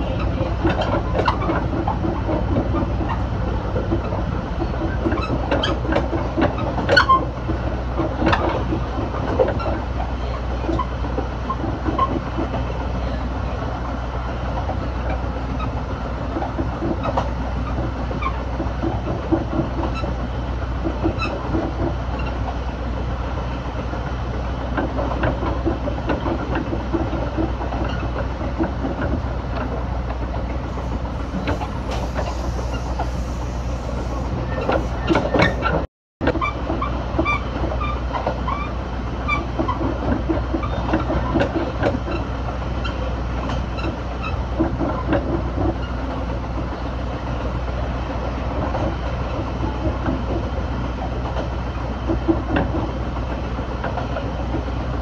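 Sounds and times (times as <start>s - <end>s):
train rumbling on rails: 0.0s - 55.0s
wheels clacking over rail joints: 0.0s - 55.0s.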